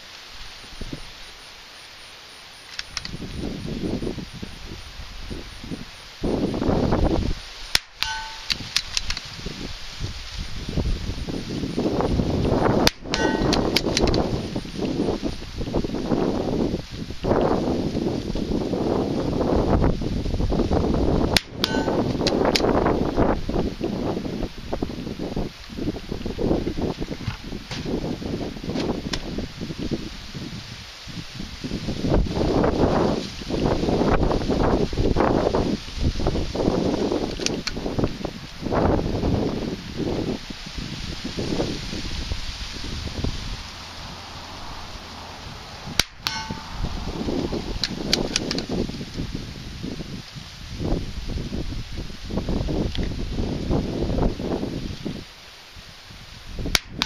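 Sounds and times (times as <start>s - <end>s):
dry cornstalks rustling: 0.0s - 57.0s
wind buffeting microphone: 2.8s - 57.0s.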